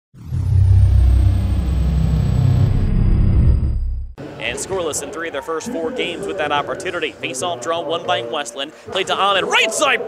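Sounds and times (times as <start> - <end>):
deep loud rumble: 0.2 - 4.2
high tone gliding down: 0.2 - 4.2.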